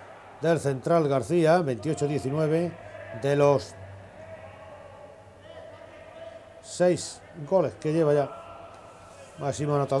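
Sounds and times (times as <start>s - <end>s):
low hall noise: 0.0s - 10.0s.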